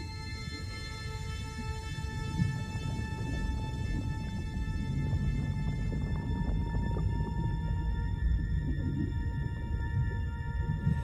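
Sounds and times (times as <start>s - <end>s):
sustained drone music: 0.0s - 11.0s
low shifting rumble: 2.1s - 11.0s.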